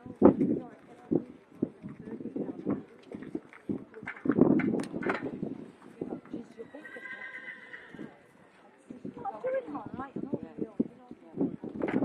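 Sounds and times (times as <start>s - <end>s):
murmur of voices: 0.0s - 12.0s
horse whinnying: 6.7s - 8.1s.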